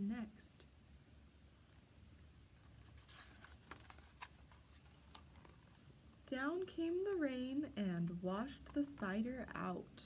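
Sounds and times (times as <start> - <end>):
soft ticks of page turning: 2.6 - 5.8
paper rustling: 2.6 - 5.9.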